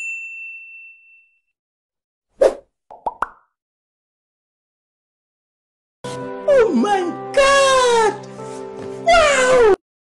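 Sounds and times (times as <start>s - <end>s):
background music: 6.0s - 9.8s
meow-like cry: 9.1s - 9.8s.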